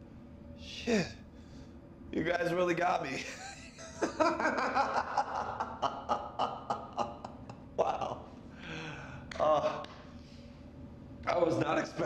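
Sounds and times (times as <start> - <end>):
man laughing: 3.2 - 8.3.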